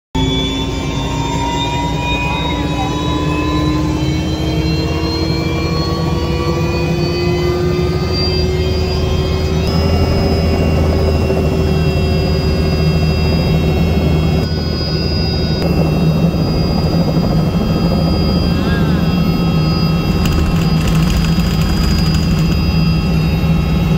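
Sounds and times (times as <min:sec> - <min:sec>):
engine whine rising in pitch: 0:00.2 - 0:23.9
helicopter engine and rotor drone: 0:00.2 - 0:23.9.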